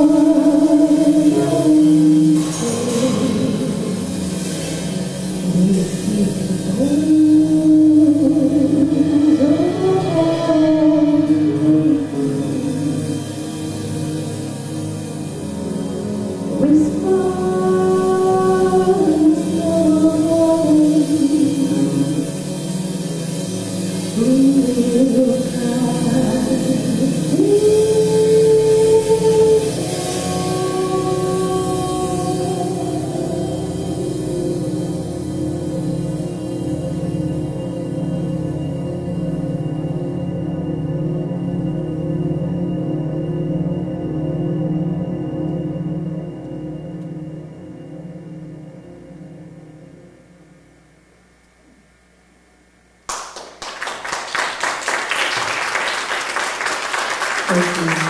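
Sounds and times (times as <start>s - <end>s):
drums: 0.0s - 40.8s
fretless bass: 0.0s - 49.2s
stage piano: 0.0s - 50.7s, 53.1s - 58.0s
audience applause: 53.1s - 58.0s.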